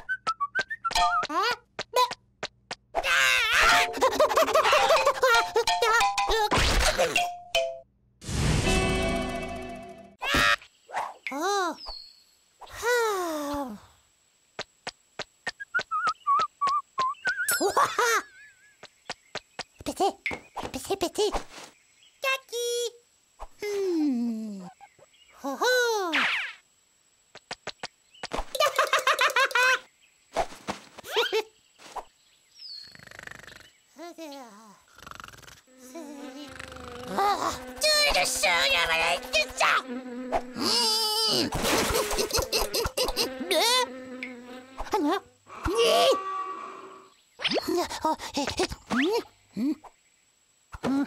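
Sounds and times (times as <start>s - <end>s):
noisy sound effect burst: 8.2s - 10.2s
cartoon fly buzzing: 34.9s - 47.6s.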